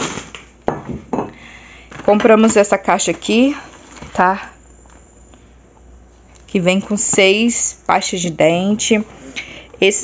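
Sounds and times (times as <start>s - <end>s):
groceries knocking and clinking: 0.0s - 4.4s.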